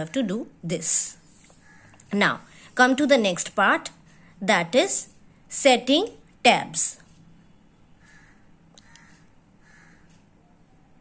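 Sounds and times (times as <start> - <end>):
harsh bird calls: 1.4 - 2.1.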